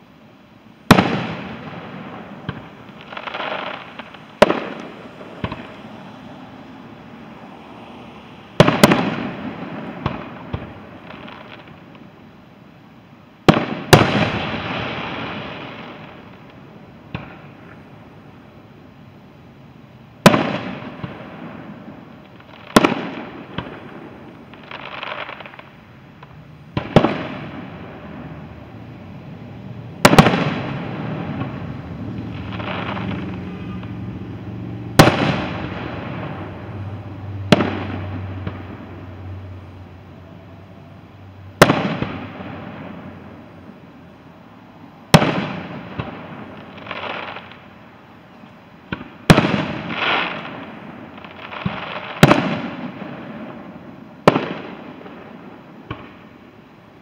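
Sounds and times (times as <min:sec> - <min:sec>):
fireworks bursting with echo: 0:00.7 - 0:12.4, 0:13.3 - 0:18.6, 0:20.1 - 0:44.4, 0:45.0 - 0:57.0.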